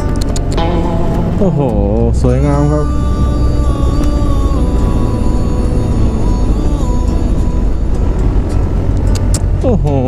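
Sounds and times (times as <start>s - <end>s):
scooter engine drone: 0.0s - 10.0s.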